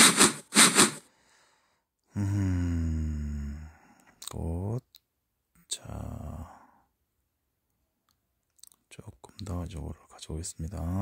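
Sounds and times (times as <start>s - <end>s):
breathy exhale: 1.0s - 4.1s.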